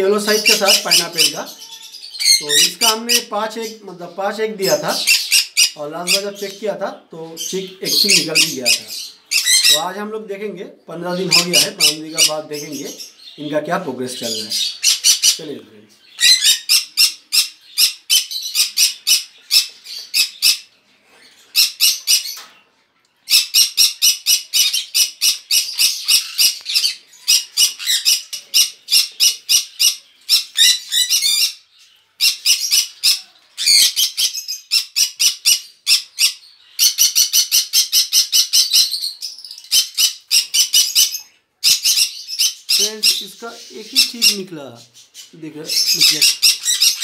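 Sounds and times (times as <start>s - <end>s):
parrots screeching: 0.2s - 3.8s, 4.6s - 6.6s, 7.4s - 10.0s, 11.1s - 13.4s, 14.2s - 15.4s, 16.0s - 22.4s, 23.3s - 47.0s.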